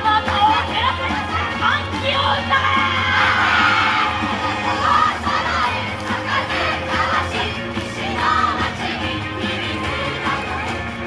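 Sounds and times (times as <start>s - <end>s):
loud dance music: 0.0s - 11.0s
group shouting in unison: 2.6s - 5.5s.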